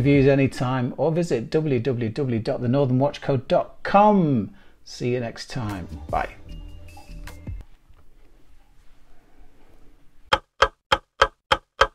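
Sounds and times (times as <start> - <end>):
clock-like ticks: 10.3 - 11.9.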